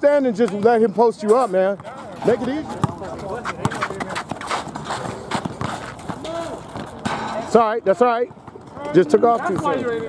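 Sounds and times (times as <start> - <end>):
sneakers hitting pavement: 0.5 - 7.5
basketball bouncing on asphalt: 1.7 - 7.4, 8.2 - 10.0.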